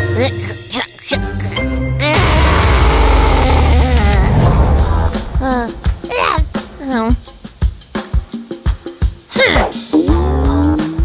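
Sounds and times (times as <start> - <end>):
gliding vocal sounds: 2.1 - 7.1
crickets chirping: 3.0 - 11.0.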